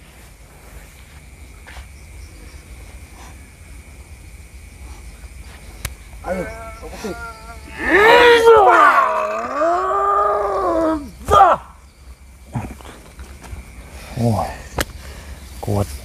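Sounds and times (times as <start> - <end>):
man yelling: 6.2 - 11.7.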